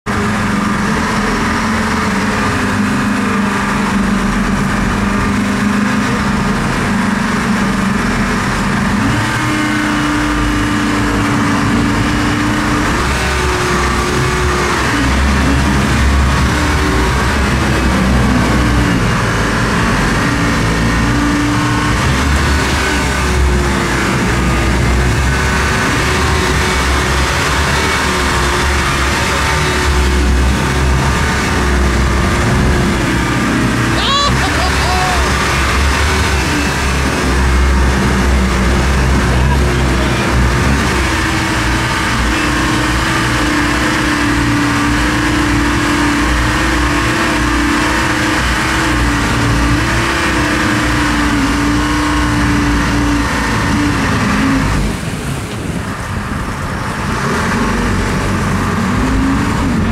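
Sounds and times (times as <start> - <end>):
boat engines running: 0.0 - 59.9
wind: 0.0 - 59.9
water rushing: 0.1 - 59.9.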